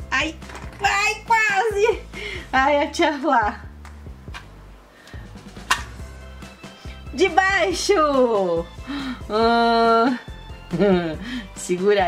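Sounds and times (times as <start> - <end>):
music with bass and light drums: 0.0 - 12.0
sharp click: 5.1 - 6.0.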